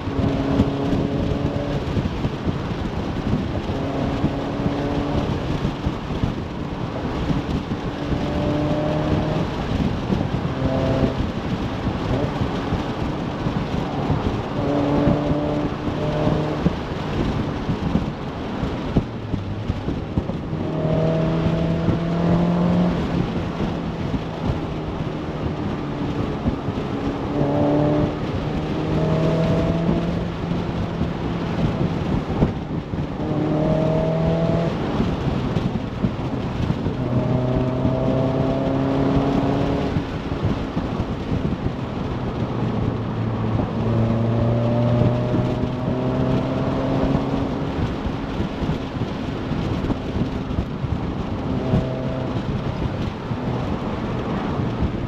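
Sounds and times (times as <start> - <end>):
car engine accelerating: 0.0 - 55.0
road rumble: 0.0 - 55.0
wind noise: 0.0 - 55.0.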